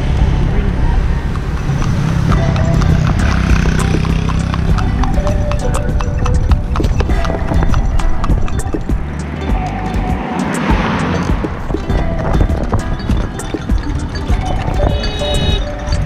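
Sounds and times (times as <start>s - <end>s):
steady low rumble: 0.0s - 16.0s
horse hooves clip-clopping on asphalt: 1.2s - 16.0s.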